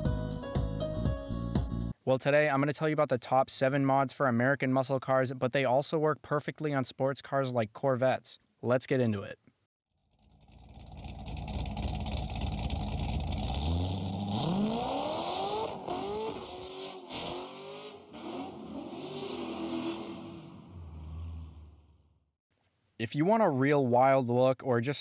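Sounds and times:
car engine exhaust revving: 0:10.1 - 0:22.0.

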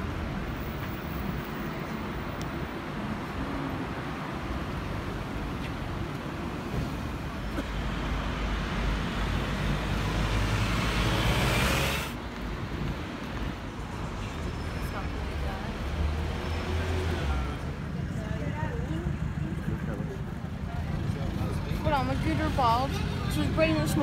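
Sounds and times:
rumble of passing vehicles: 0:00.0 - 0:24.0.

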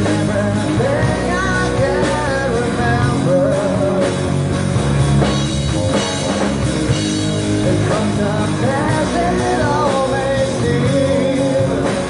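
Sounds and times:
person singing: 0:00.0 - 0:04.4, 0:05.2 - 0:12.0
live rock band playing: 0:00.0 - 0:12.0.

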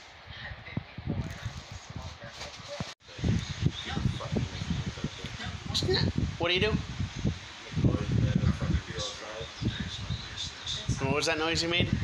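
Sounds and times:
microphone handling noise: 0:00.7 - 0:11.0.

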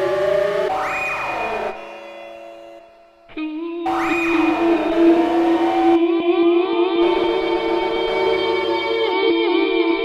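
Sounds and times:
sliding siren-like tones: 0:00.0 - 0:02.8, 0:03.9 - 0:06.2.

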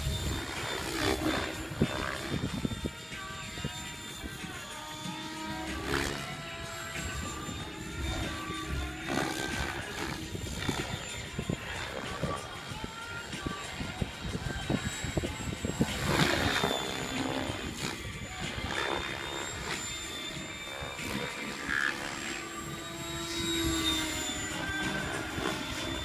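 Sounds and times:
electric motor whine: 0:00.0 - 0:26.0
helicopter rotor blades: 0:00.0 - 0:26.0.

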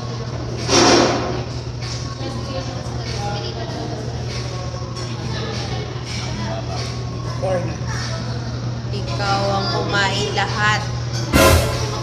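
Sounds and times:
steady low hum: 0:10.9 - 0:12.0.

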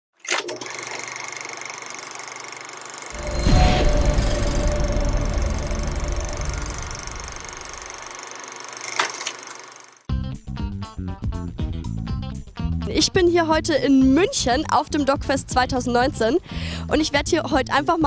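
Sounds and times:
deep boom with low rumble: 0:03.2 - 0:07.9
sharp hit: 0:03.2 - 0:08.1.

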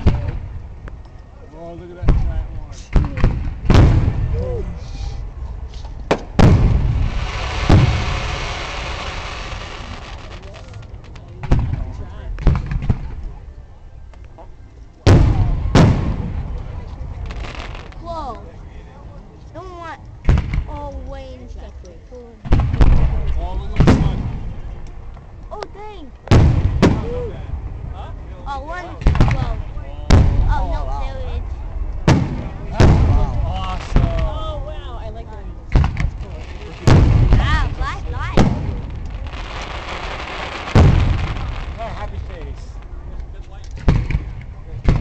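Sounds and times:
fireworks booming with echo: 0:00.0 - 0:01.0, 0:02.0 - 0:05.3, 0:06.0 - 0:13.4, 0:15.0 - 0:18.1, 0:20.2 - 0:20.8, 0:22.4 - 0:25.1, 0:26.2 - 0:34.8, 0:35.6 - 0:45.0.

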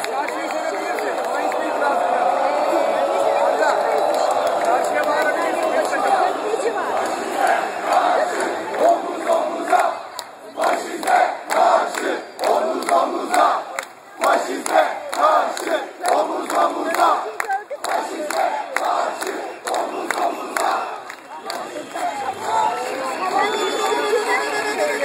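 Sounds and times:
crowd chanting: 0:00.0 - 0:25.0
rhythmic clapping: 0:00.0 - 0:25.0.

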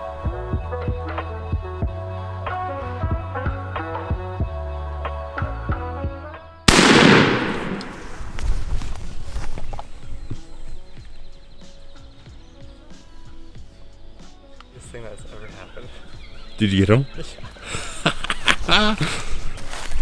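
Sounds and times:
background music: 0:00.0 - 0:20.0
loud shotgun blast: 0:06.7 - 0:08.3.

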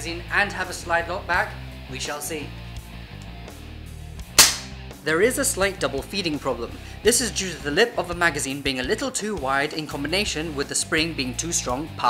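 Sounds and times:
airsoft pistol shot: 0:04.4 - 0:04.8.

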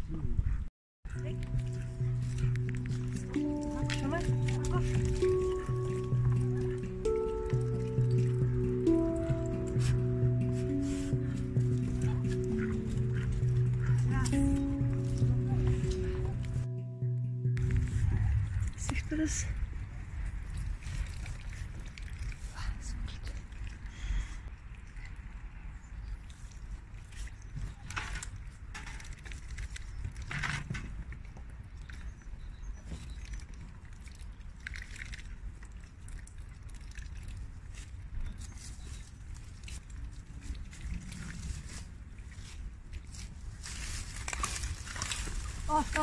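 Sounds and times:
steady low rumble: 0:01.1 - 0:25.0
dry leaves and twigs crackling: 0:01.2 - 0:16.6, 0:37.7 - 0:46.0.

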